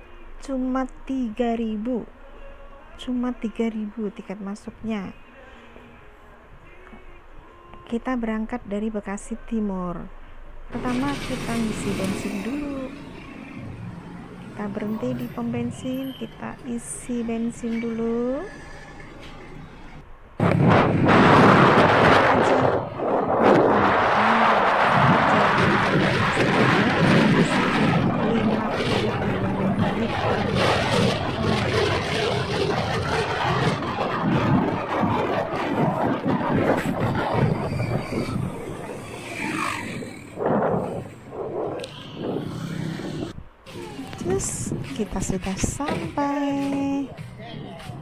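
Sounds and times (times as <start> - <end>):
engine and road hum: 8.6 - 47.9
wind rushing over microphone: 10.7 - 18.5, 20.4 - 47.2.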